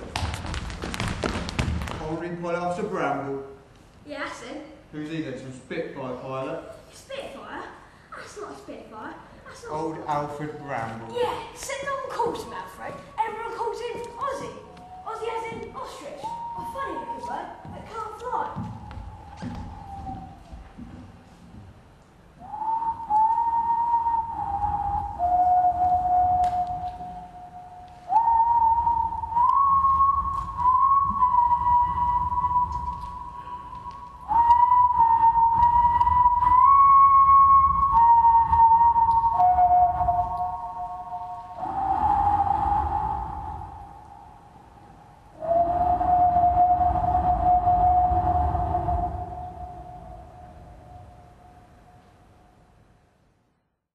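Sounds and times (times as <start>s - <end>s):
slow whistle-like melody: 13.0s - 21.3s, 22.4s - 52.6s.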